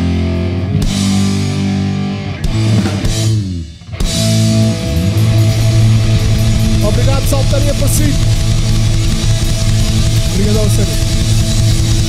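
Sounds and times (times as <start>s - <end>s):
distorted electric guitars: 0.0s - 12.0s
drum kit: 0.0s - 12.0s
punk rock band playing live: 0.0s - 12.0s.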